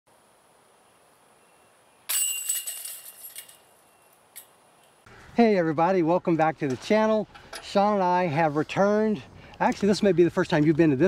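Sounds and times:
disc hitting basket chains: 2.1s - 4.6s
chains jingling and rattling: 2.2s - 3.7s.

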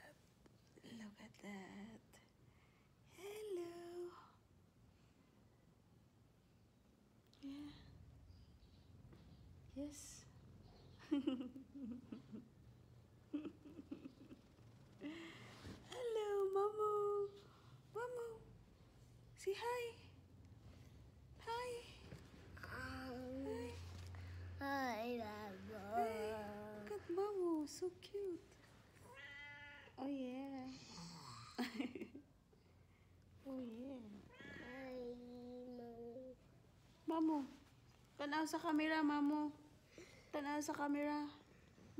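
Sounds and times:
cat meowing: 29.0s - 30.0s.

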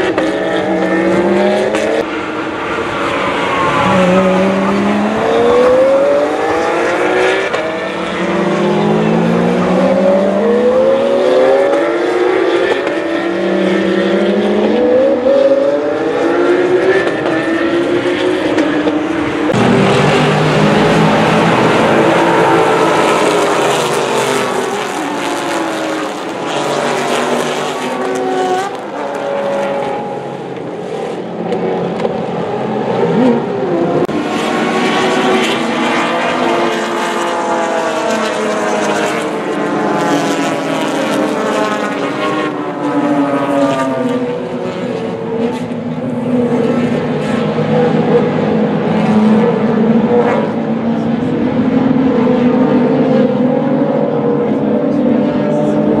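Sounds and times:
racing car engines passing: 0.0s - 56.0s.

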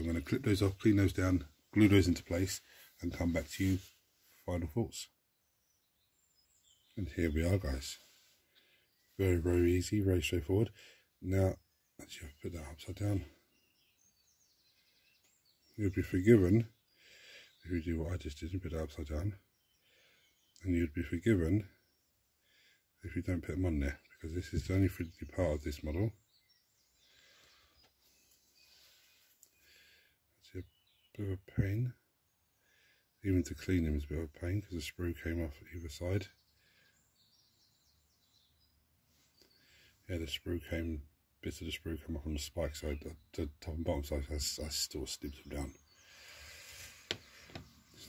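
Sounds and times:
rustling and scraping: 46.2s - 48.0s.

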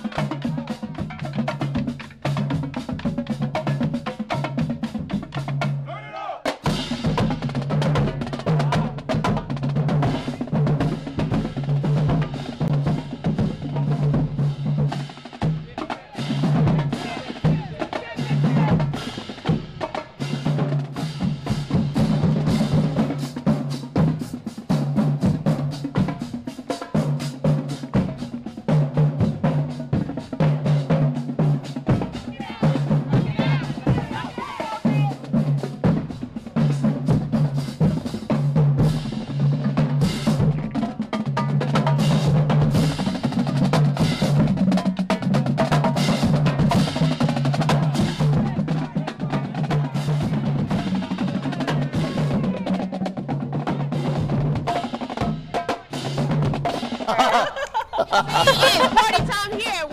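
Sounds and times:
rapid snare drum strokes: 0.0s - 59.9s
pitched bass drums: 6.6s - 59.9s.

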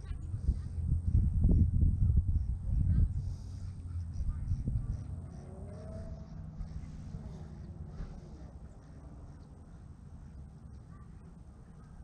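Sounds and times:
low rumble: 0.0s - 12.0s
faint rising and falling calls: 5.0s - 10.4s.

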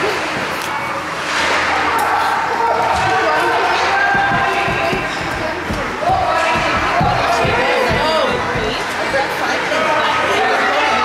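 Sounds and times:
spectators calling out: 2.0s - 11.0s
hockey sticks and puck knocking: 3.0s - 9.2s.

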